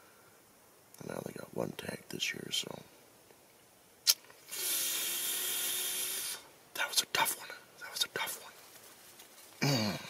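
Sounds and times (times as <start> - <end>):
long sigh: 9.6 - 10.0.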